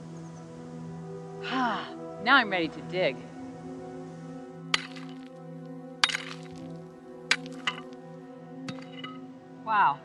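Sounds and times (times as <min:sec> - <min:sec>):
background music: 0:00.0 - 0:10.0
digging in stony ground: 0:04.7 - 0:05.4, 0:06.0 - 0:08.1, 0:08.7 - 0:09.3
stone knocking on stone: 0:06.0 - 0:06.7, 0:07.3 - 0:08.0.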